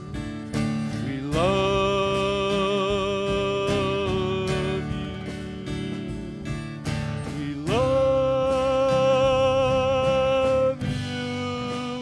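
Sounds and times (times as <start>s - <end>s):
worship band playing: 0.0s - 12.0s.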